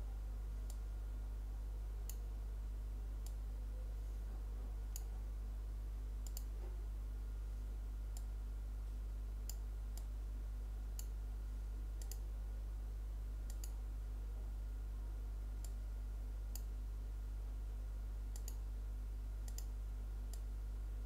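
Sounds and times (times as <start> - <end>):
low electrical hum: 0.0 - 21.0
computer mouse clicking: 6.2 - 6.5, 12.0 - 12.3, 13.5 - 13.8, 18.3 - 18.6, 19.4 - 20.5.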